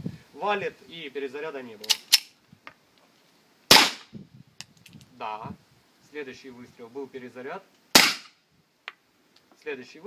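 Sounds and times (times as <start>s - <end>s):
gas pistol shot: 3.7s - 4.1s, 7.9s - 8.4s.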